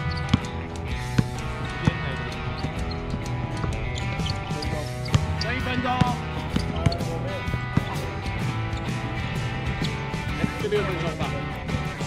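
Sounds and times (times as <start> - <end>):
basketball bouncing on hard court: 0.0 - 10.7
background music: 0.0 - 12.0.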